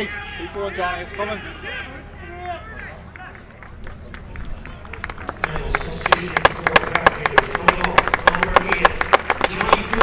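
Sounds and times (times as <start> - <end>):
spectators clapping: 2.3 - 10.0.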